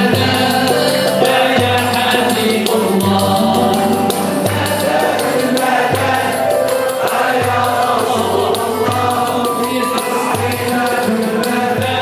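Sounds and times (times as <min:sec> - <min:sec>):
oud playing: 0:00.0 - 0:12.0
person singing: 0:00.0 - 0:12.0.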